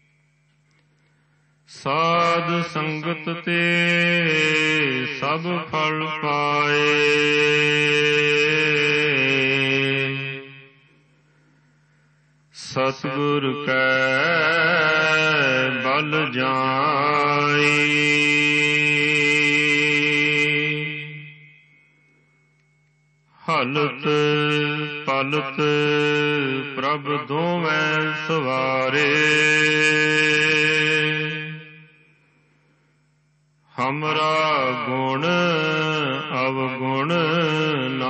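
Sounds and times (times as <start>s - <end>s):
man chanting: 1.7s - 10.9s, 12.6s - 21.6s, 23.4s - 32.0s, 33.7s - 38.0s
harmonium drone: 12.7s - 32.8s.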